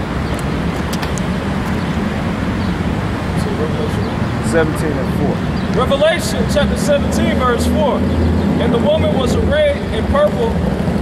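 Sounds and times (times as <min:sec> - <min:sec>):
road noise hum: 0:00.0 - 0:11.0.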